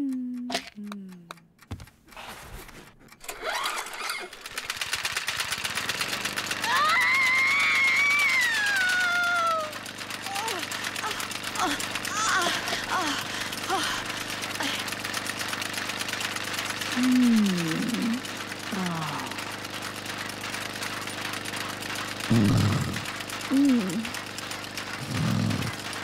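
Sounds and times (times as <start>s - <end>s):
woman moaning and groaning: 0.0s - 1.3s, 6.6s - 14.8s, 17.0s - 19.4s, 22.3s - 24.1s.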